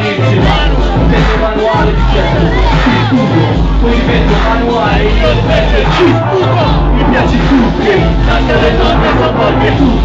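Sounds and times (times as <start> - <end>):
crowd shouting: 0.0 - 10.0
hip-hop music with heavy bass: 0.0 - 10.0.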